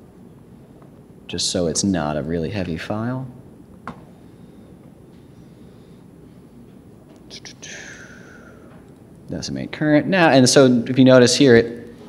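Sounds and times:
faint background noise: 0.0s - 12.0s
breathy whisper: 7.3s - 8.8s.

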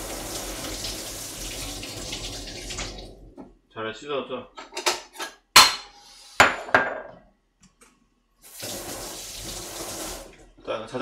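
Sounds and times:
sink tap running: 0.0s - 3.4s, 8.5s - 10.4s.

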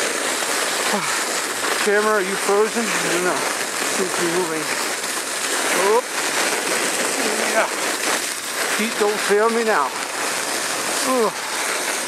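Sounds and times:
sled sliding over snow: 0.0s - 12.0s.

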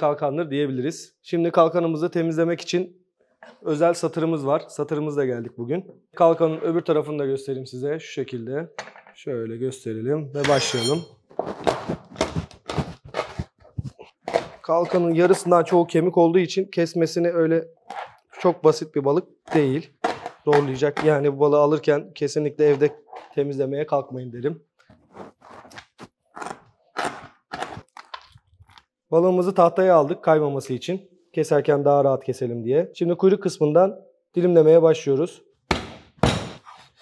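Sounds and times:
fish scraping on cutting board: 24.9s - 27.9s
cleaver chopping fish on board: 35.7s - 36.6s.

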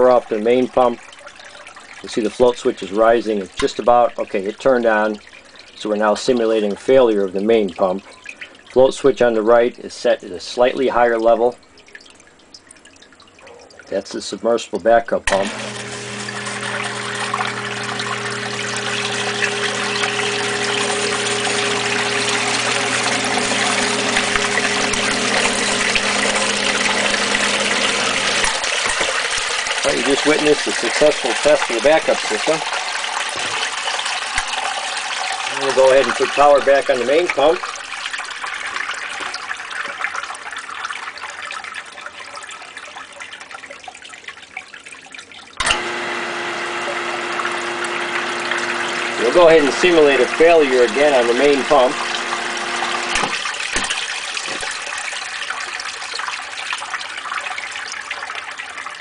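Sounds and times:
sump pump electric hum: 15.2s - 37.7s, 45.6s - 54.9s
churning rushing water: 15.4s - 38.0s, 45.7s - 57.7s.

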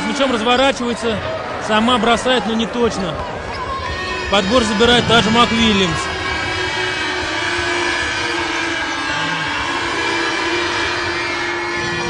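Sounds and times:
basketball arena din: 0.0s - 12.0s.

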